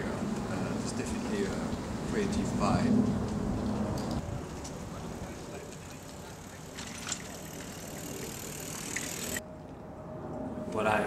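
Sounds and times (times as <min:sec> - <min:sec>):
distant road traffic rumble: 0:00.0 - 0:09.5.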